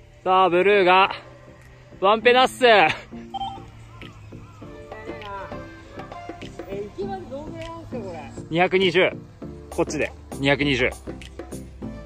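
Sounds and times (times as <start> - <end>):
soft electronic tones: 3.2 - 3.8.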